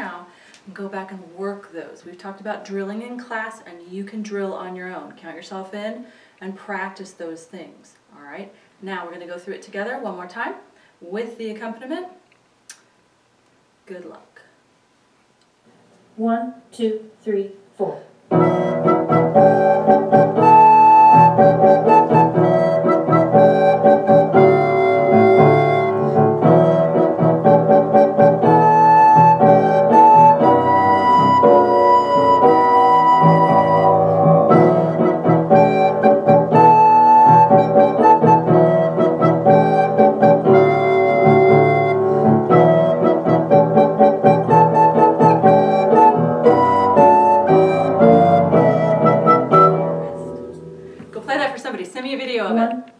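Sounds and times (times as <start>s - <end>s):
recorder playing a melody: 18.3s - 50.4s
keyboard accompaniment with beat: 18.3s - 51.0s.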